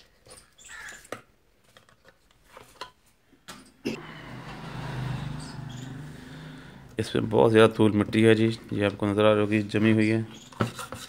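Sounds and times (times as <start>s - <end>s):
vehicle engine passing by: 3.9s - 8.8s.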